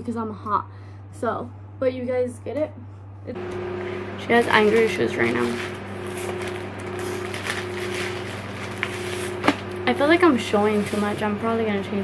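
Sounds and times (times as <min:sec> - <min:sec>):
electric fan humming: 0:00.0 - 0:12.0
plastic bag crackling: 0:04.3 - 0:11.3.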